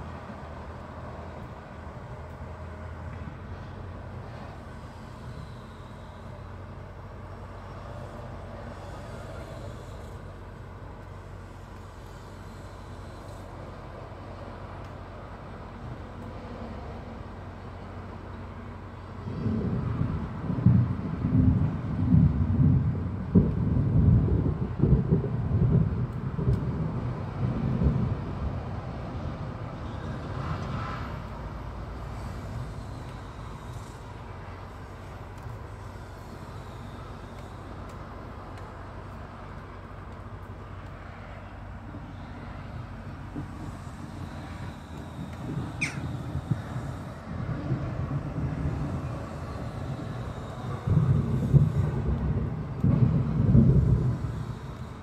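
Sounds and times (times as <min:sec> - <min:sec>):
low outdoor rumble: 0:00.0 - 0:55.0
wind buffeting microphone: 0:18.4 - 0:41.0, 0:41.8 - 0:55.0.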